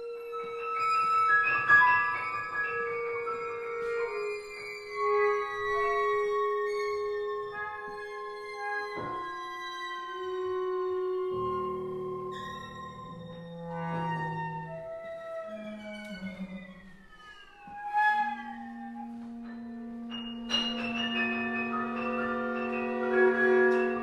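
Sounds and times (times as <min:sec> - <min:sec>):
cello: 0:00.0 - 0:24.0
percussion: 0:00.0 - 0:24.0
piano: 0:00.0 - 0:24.0.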